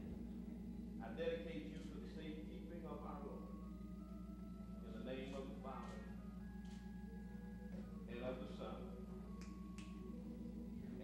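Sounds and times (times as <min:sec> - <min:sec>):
steady low hum: 0:00.0 - 0:11.0
man speaking: 0:01.0 - 0:03.5, 0:04.8 - 0:06.2, 0:08.1 - 0:09.1.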